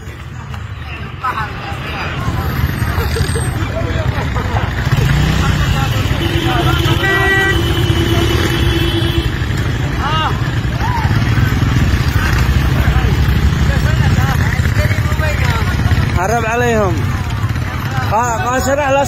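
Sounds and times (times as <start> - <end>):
voices calling out: 0.0 - 19.0
motorcycle engine running: 2.1 - 19.0
vehicle horn: 5.2 - 9.7.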